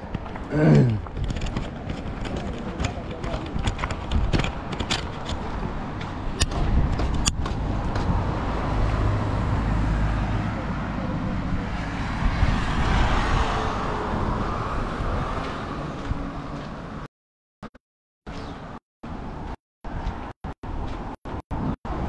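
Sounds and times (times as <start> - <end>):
low traffic rumble: 0.0 - 17.1
vehicle passing: 7.5 - 17.1.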